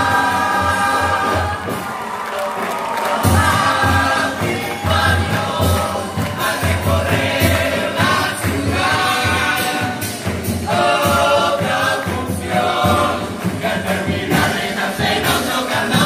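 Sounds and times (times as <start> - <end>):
children's chorus singing in unison: 0.0 - 16.0
drums and cymbals beat: 0.0 - 16.0.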